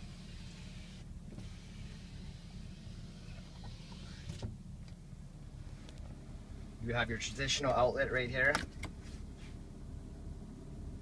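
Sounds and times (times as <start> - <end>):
power sliding window motor: 0.0 - 4.5
steady low hum: 0.0 - 11.0.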